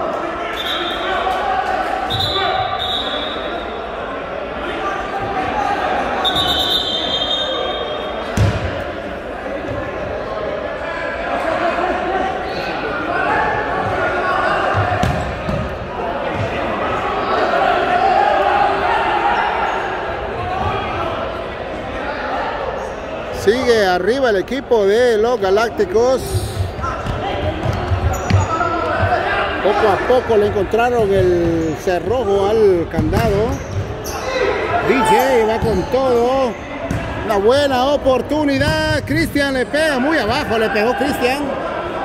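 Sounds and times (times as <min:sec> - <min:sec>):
voices in a gymnasium: 0:00.0 - 0:42.0.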